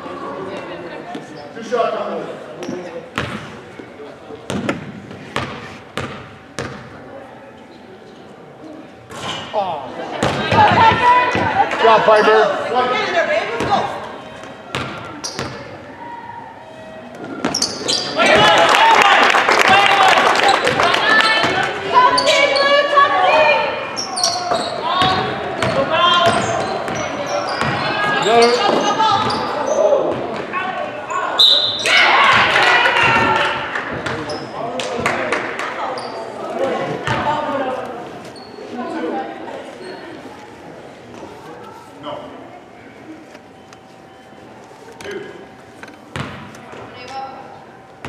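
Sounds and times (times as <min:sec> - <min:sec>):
people shouting: 0:10.4 - 0:11.7, 0:31.8 - 0:33.6.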